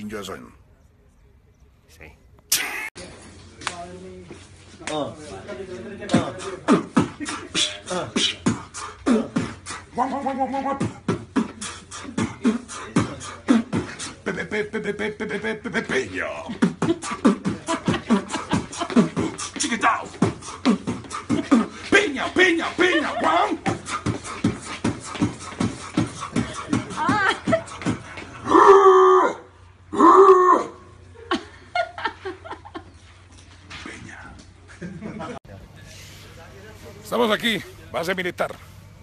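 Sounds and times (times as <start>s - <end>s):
man beatboxing: 6.1s - 14.4s, 15.6s - 28.4s.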